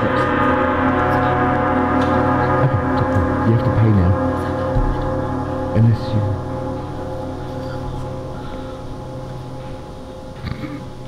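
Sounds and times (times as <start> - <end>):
orchestra sustained chord: 0.0 - 11.0
sliding low note: 0.0 - 11.0.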